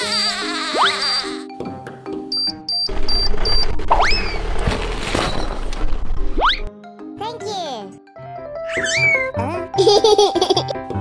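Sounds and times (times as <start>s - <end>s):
electronic timer beeps: 2.3s - 3.8s
cartoon whistle rising: 8.7s - 9.3s.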